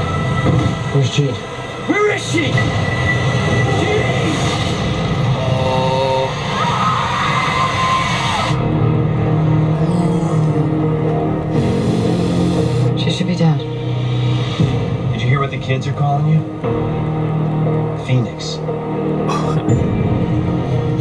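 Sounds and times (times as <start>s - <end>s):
trailer music: 0.0s - 21.0s.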